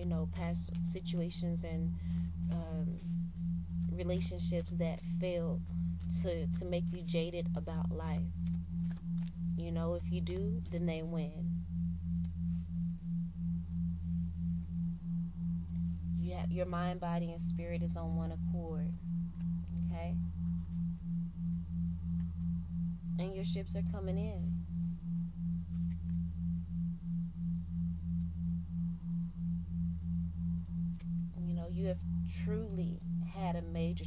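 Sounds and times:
deep steady hum: 0:00.0 - 0:34.0
low pulsing tone: 0:00.0 - 0:34.0.

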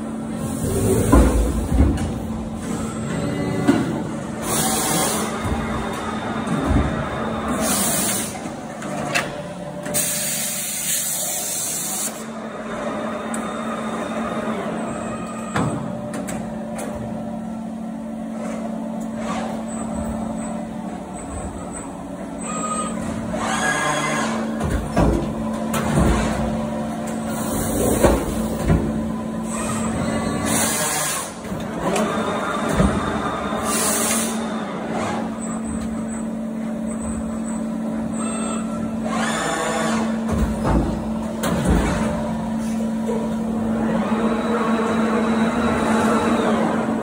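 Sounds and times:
machine hum: 0:00.0 - 0:47.0.

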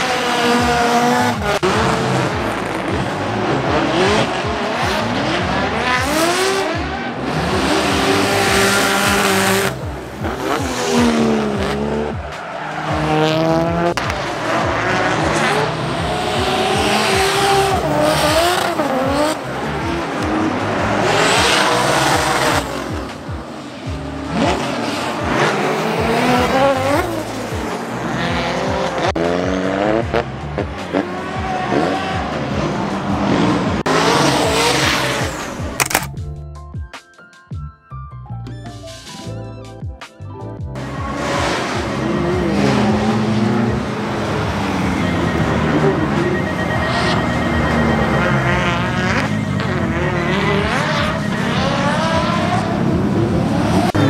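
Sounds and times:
car engines revving: 0:00.0 - 0:36.2, 0:40.8 - 0:54.0.

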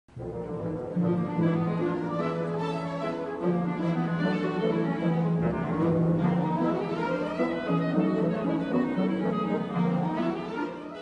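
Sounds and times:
orchestral music: 0:00.1 - 0:11.0.

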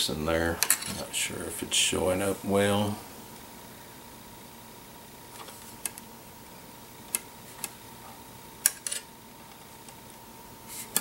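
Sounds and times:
steady high hum: 0:00.0 - 0:11.0.

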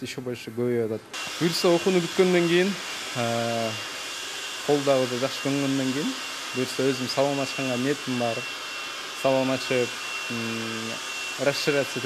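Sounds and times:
person speaking: 0:00.0 - 0:03.9, 0:04.7 - 0:08.5, 0:09.2 - 0:12.0
electric hair clippers humming: 0:01.2 - 0:12.0.

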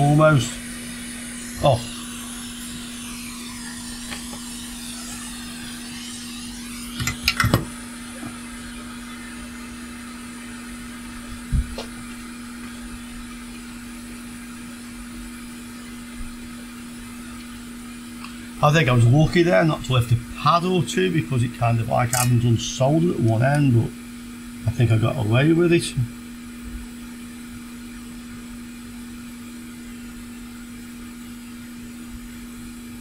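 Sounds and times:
hot-air station blowing hum: 0:00.0 - 0:33.0.

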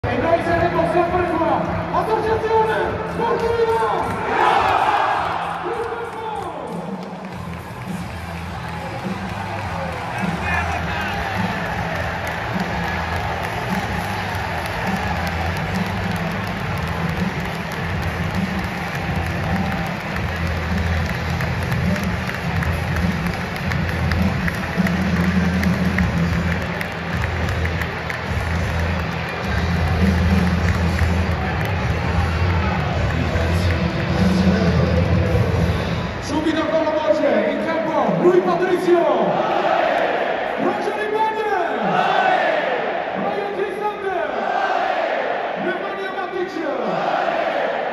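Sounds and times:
music over loudspeakers: 0:00.0 - 0:39.3
stadium crowd hubbub: 0:00.0 - 0:47.9.

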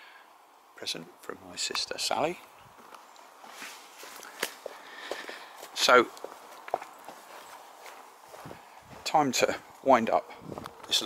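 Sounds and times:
soft footsteps: 0:01.8 - 0:11.0.

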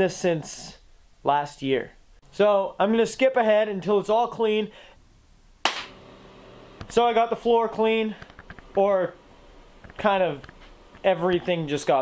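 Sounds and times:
steady low hum: 0:05.0 - 0:12.0
sharp clap-like smack: 0:05.6 - 0:06.0.

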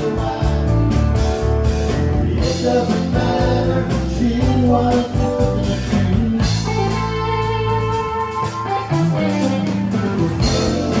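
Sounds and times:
country rock band playing: 0:00.0 - 0:11.0.

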